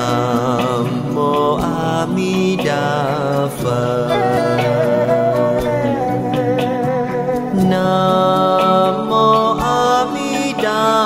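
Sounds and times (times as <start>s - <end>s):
devotional chanting: 0.0s - 11.0s
instrumental music: 0.0s - 11.0s.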